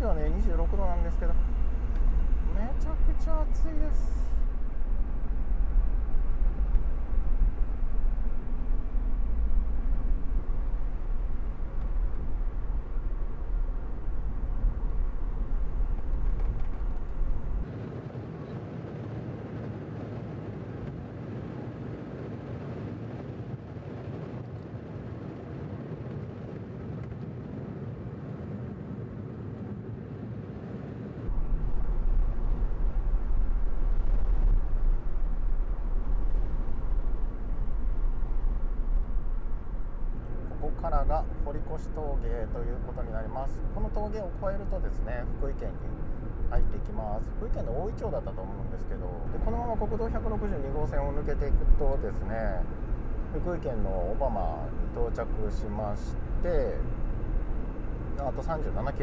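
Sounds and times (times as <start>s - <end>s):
car cabin road and engine rumble: 0.0s - 17.9s, 30.7s - 59.0s.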